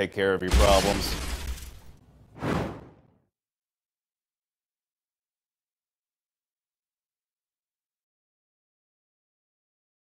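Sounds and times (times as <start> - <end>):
whoosh sound effect: 2.4 - 3.1.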